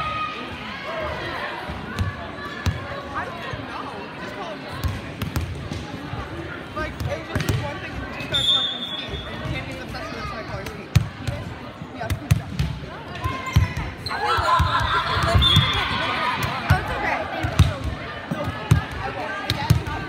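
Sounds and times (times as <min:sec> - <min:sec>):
chatter of people: 0:00.0 - 0:20.0
whistle blast: 0:08.3 - 0:09.3.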